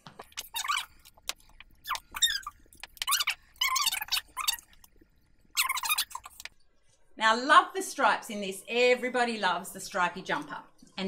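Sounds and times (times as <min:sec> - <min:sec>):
short high-pitched squeaks: 0:00.1 - 0:01.2, 0:01.8 - 0:04.7, 0:05.5 - 0:06.5.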